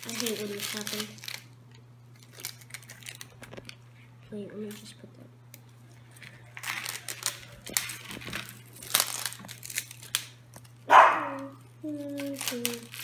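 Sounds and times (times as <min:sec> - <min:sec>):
plastic wrapper crinkling and tearing: 0:00.0 - 0:04.9, 0:05.5 - 0:13.0.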